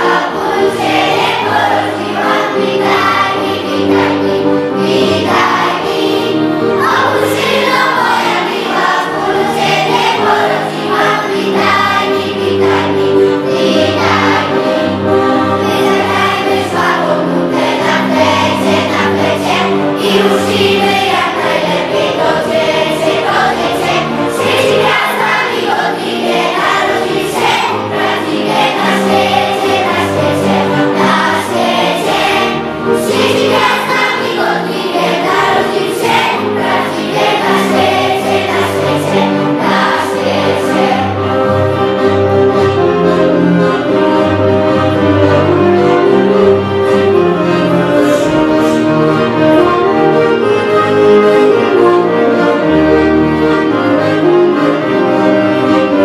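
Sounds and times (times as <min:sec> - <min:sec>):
children's choir singing a carol: 0:00.0 - 0:56.0
sustained low accompaniment notes: 0:00.0 - 0:56.0.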